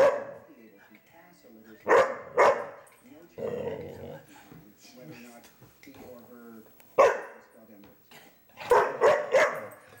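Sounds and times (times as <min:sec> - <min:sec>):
dog barking: 0:00.0 - 0:00.5, 0:01.9 - 0:02.8, 0:07.0 - 0:07.4, 0:08.6 - 0:09.8.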